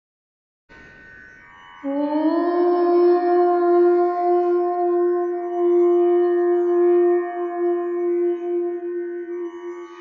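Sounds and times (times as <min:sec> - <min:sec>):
musical drone: 0:00.7 - 0:10.0
conch shell blown: 0:01.8 - 0:10.0.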